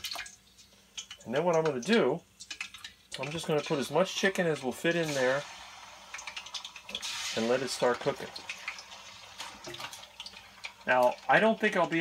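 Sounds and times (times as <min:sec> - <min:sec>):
fat crackling and popping: 0:00.0 - 0:12.0
meat sizzling in hot fat: 0:03.2 - 0:12.0.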